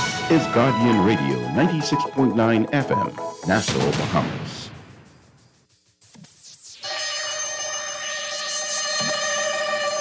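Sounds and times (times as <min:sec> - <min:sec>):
electronic chord: 0:06.6 - 0:10.0.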